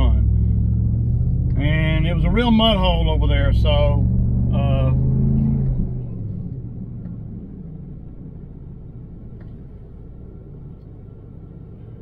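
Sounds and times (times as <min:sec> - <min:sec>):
engine and road rumble in cab: 0:00.0 - 0:12.0.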